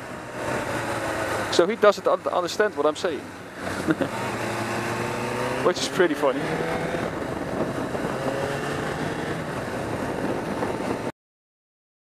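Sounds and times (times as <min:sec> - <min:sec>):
motorcycle engine cruising: 0:00.0 - 0:11.1
wind and road noise: 0:00.0 - 0:11.2.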